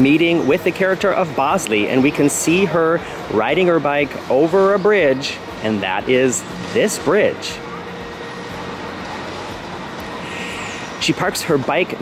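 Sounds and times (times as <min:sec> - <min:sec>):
traffic-like rumble: 0:00.0 - 0:12.0.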